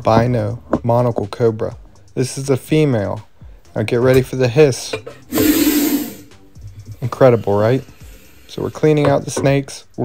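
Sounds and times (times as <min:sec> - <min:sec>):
cobra hissing: 0:05.2 - 0:09.0.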